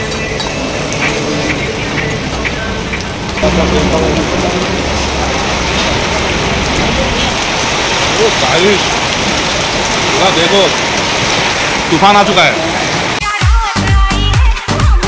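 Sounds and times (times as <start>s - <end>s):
heavy rain pouring: 0.0s - 15.0s.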